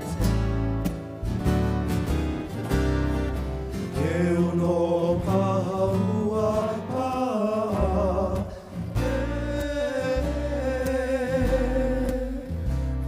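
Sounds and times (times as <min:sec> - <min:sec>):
low bass line: 0:00.0 - 0:07.0, 0:07.7 - 0:13.0
guitar strumming: 0:00.0 - 0:13.0.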